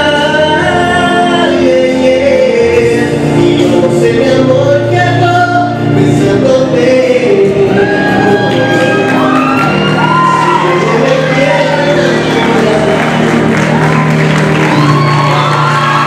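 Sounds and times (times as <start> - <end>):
man singing into a microphone: 0.0 - 14.3
instrumental accompaniment: 0.0 - 16.0.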